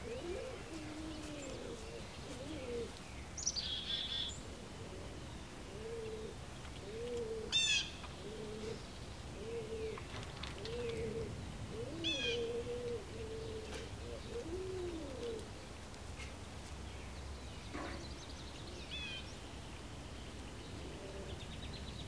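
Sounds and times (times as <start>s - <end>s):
pigeon cooing: 0.0s - 3.0s, 4.4s - 15.5s, 20.8s - 21.5s
songbird chirps: 0.0s - 22.0s.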